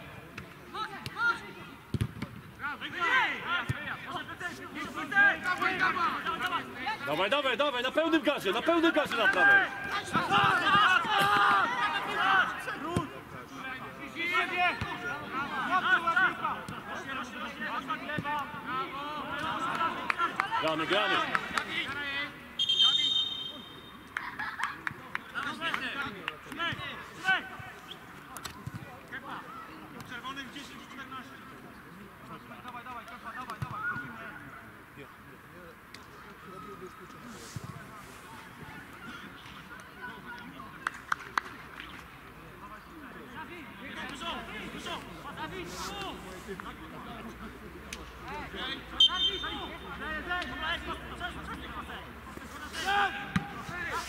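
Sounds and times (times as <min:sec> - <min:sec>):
distant players shouting: 0:09.0 - 0:13.0
referee whistle blast: 0:22.6 - 0:24.0, 0:49.0 - 0:49.7.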